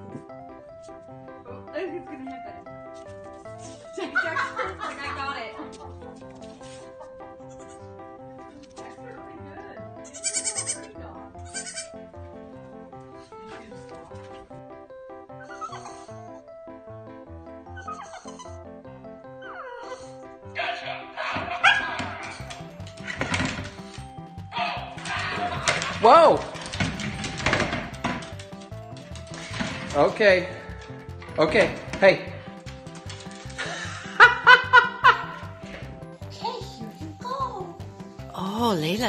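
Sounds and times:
background music: 0.0s - 39.0s
baby goat bleating: 10.0s - 12.0s.

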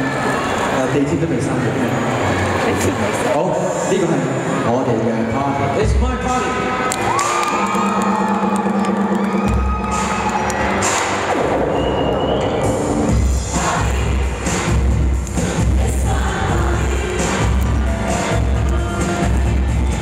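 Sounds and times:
crowd cheering: 6.4s - 14.6s, 16.6s - 20.0s.

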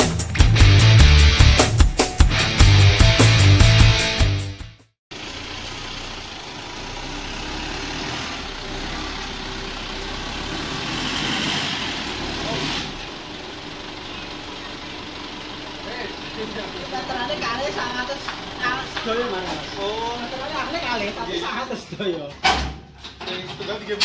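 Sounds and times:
pickup truck engine running: 5.1s - 21.6s
voices: 12.2s - 22.4s.

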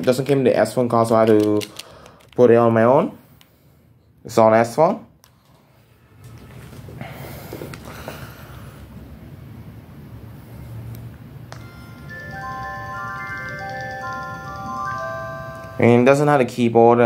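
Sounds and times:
mobile phone power-on melody: 11.5s - 16.1s.

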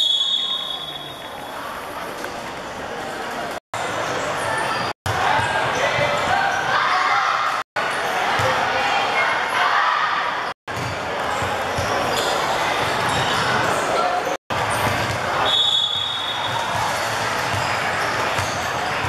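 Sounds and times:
chatter and calls in hall: 0.0s - 19.0s
basketballs bouncing on wooden court: 10.7s - 13.5s.

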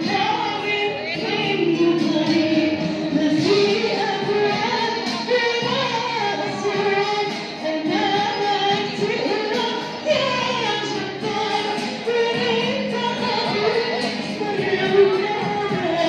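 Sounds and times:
group of voices singing: 0.0s - 16.0s.

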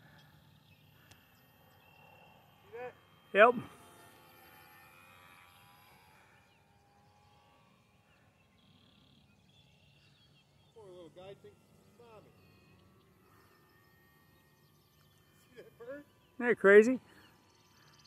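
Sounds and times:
outdoor background noise: 0.0s - 18.0s.

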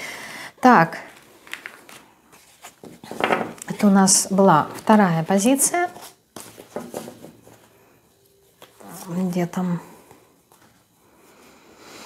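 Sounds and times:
cards rustling: 1.1s - 3.2s.

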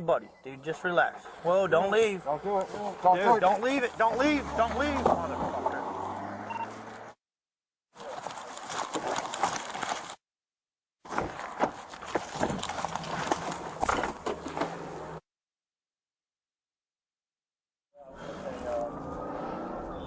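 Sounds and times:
belt gear rattling and jangling: 8.0s - 10.2s, 11.1s - 14.5s.

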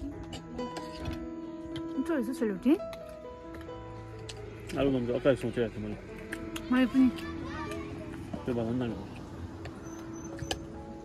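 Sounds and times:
background music with held tone: 0.0s - 11.0s.

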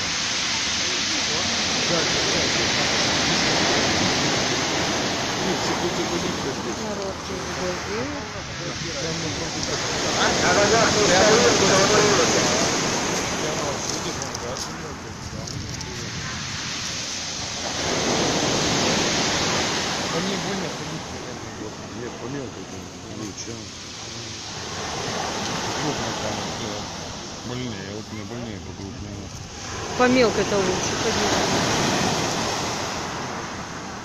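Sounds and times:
surf breaking on pebble beach: 0.0s - 34.0s.

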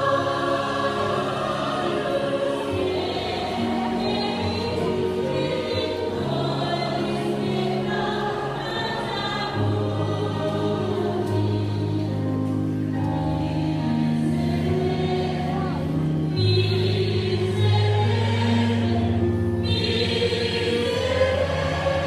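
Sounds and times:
large choir singing chords: 0.0s - 22.0s.

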